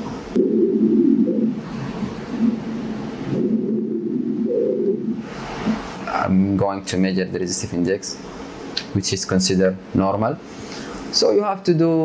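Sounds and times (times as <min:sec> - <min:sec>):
pulsing ultrasound doppler whoosh: 0:00.0 - 0:06.1.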